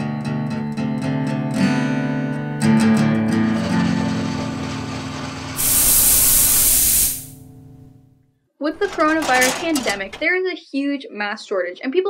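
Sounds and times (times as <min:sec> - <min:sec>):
steam hissing: 0:05.6 - 0:07.4.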